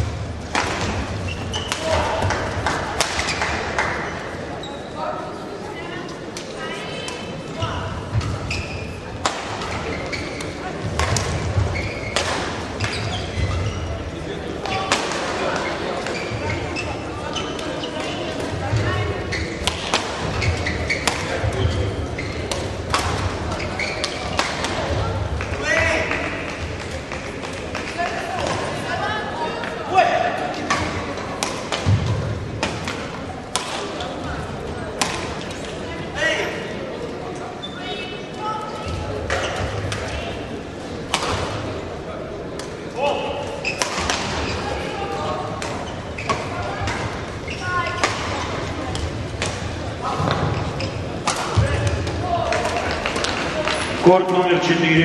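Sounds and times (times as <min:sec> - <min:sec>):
murmur of voices: 0:00.0 - 0:55.0
rackets hitting shuttlecock: 0:00.5 - 0:03.6, 0:09.2 - 0:13.4, 0:19.6 - 0:21.7, 0:22.4 - 0:24.9, 0:35.0 - 0:35.6, 0:43.7 - 0:44.6, 0:48.0 - 0:50.6, 0:51.2 - 0:53.9.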